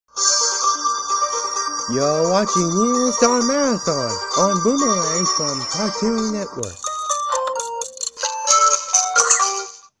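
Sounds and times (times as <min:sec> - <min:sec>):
bell-like jingle melody: 0:01.0 - 0:09.5.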